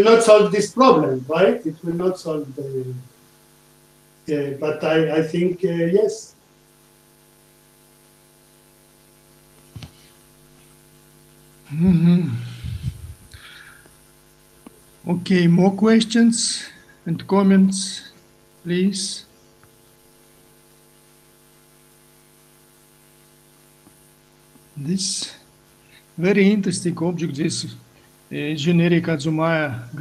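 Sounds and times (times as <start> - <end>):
man's voice: 0.0 - 3.0, 4.3 - 6.3, 26.2 - 30.0
electrical mains hum: 0.0 - 30.0.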